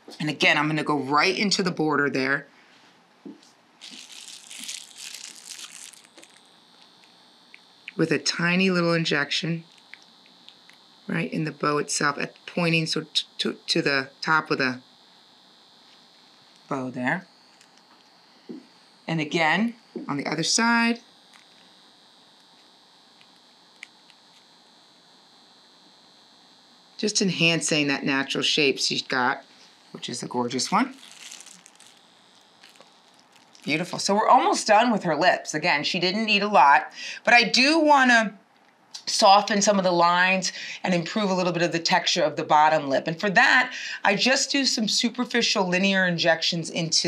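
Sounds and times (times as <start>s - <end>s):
faint high-pitched whine: 0.0s - 47.0s
plastic wrap crinkling: 3.8s - 7.2s, 21.3s - 21.7s, 30.0s - 34.1s.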